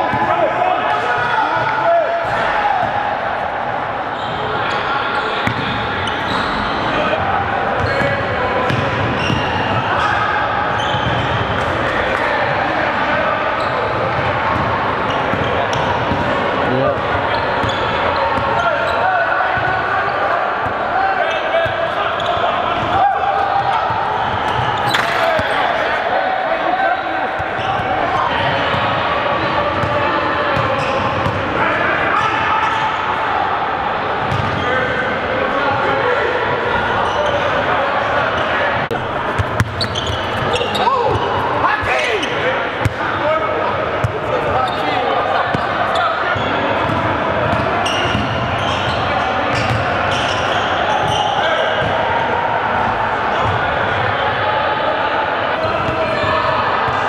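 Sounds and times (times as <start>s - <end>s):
players' voices and calls: 0.0s - 57.0s.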